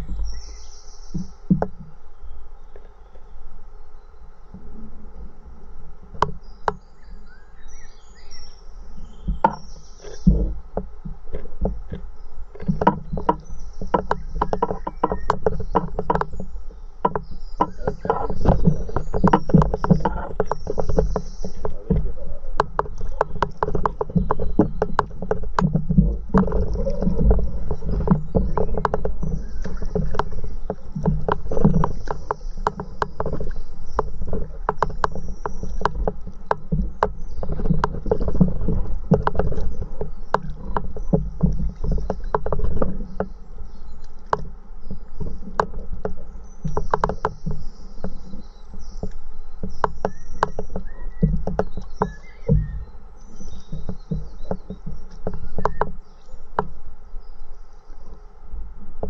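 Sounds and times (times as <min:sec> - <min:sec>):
water rumbling against board: 0:00.0 - 0:59.0
water splashing from paddle: 0:04.6 - 0:58.1.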